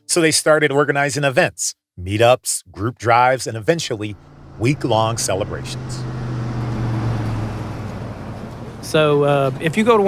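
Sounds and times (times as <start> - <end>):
car engine and road noise: 3.9 - 10.0.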